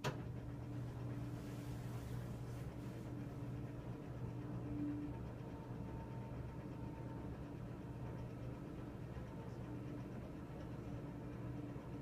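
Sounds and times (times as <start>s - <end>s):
roller shade motor humming: 0.0s - 12.0s.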